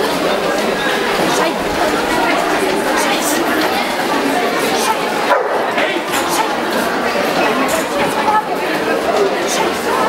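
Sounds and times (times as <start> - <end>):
crowd chatter: 0.0 - 10.0
dog barking: 5.3 - 5.7.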